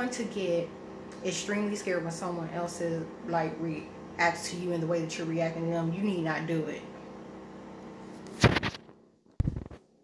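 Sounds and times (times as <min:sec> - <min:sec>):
faint room hum: 0:00.0 - 0:10.0
phone rubbing on microphone: 0:08.0 - 0:09.8.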